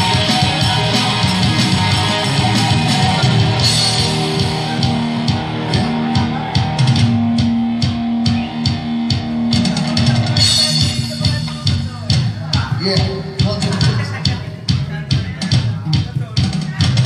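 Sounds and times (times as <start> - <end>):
drum hits: 0.0 - 17.0
rock band playing: 0.0 - 17.0.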